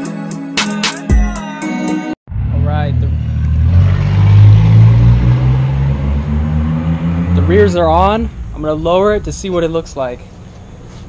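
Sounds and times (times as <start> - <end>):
music: 0.0 - 2.2
car engine droning: 2.3 - 11.0.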